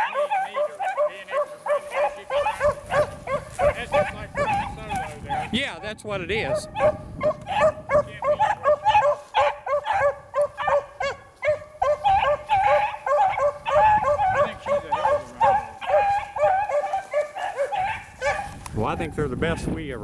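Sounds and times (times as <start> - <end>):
beagles baying and howling: 0.0 - 19.7.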